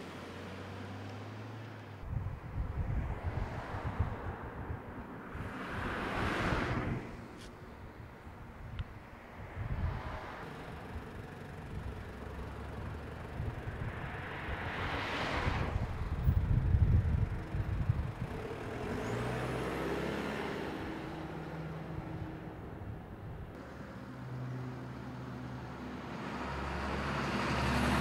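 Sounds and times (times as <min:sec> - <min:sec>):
traffic engine hum: 0:00.0 - 0:28.0
car driving past: 0:13.8 - 0:16.4, 0:17.8 - 0:22.4.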